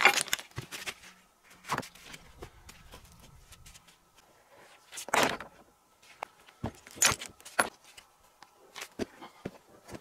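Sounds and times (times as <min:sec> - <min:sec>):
stones knocking and clinking: 0:06.6 - 0:07.8.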